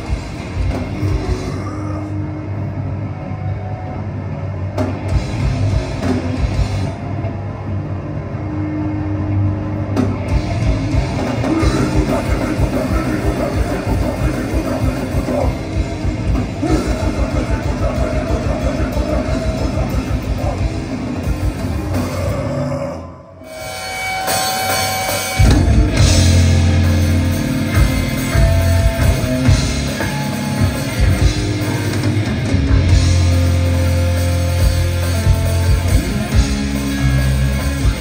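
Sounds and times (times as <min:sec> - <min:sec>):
distorted electric guitars: 0:00.0 - 0:38.0
drums: 0:00.0 - 0:38.0
amplifier and bass rumble: 0:09.2 - 0:22.4, 0:25.4 - 0:38.0.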